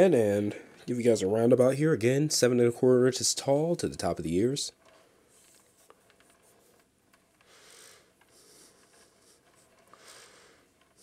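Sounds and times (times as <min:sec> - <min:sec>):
plastic turntable rubbing: 0:04.7 - 0:07.5.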